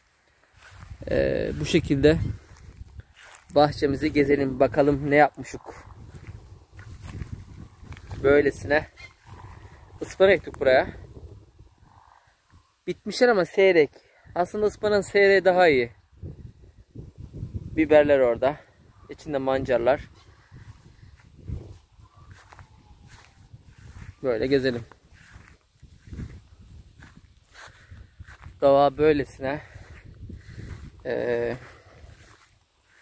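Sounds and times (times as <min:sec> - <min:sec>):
footsteps on dirt path: 0:00.0 - 0:11.2, 0:20.4 - 0:33.0.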